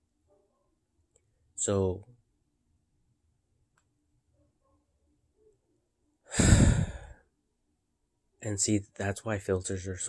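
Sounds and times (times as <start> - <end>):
man sighing: 6.3 - 7.2.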